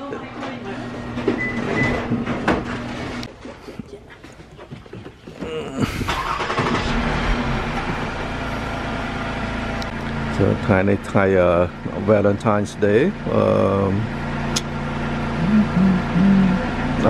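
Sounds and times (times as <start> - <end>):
car engine running: 0.1 - 3.7, 5.4 - 17.0.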